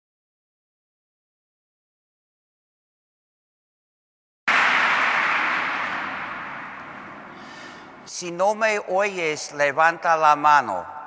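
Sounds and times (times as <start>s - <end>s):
audience noise in a hall: 4.5s - 8.1s.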